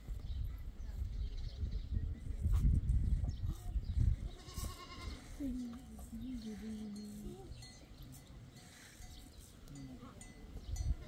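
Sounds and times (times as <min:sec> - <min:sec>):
goat bleating: 0:04.4 - 0:05.4.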